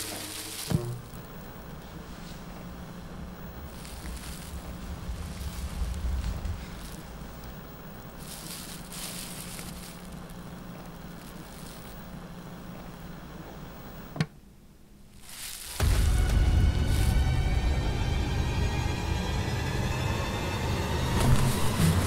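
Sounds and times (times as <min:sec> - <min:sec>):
steady low hum: 0:00.0 - 0:22.0
deep rumble: 0:00.8 - 0:12.9, 0:15.8 - 0:22.0
airy hissing swells: 0:01.8 - 0:12.0.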